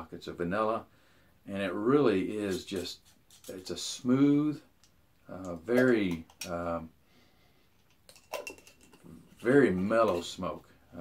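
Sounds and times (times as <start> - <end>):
metal tin lid clicks and scrapes: 2.5 - 3.7, 7.9 - 10.3.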